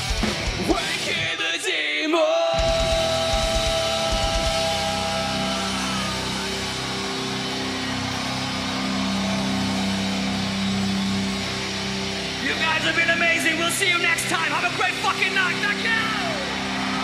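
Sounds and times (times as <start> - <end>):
distorted guitar chord ringing: 2.6 - 17.0.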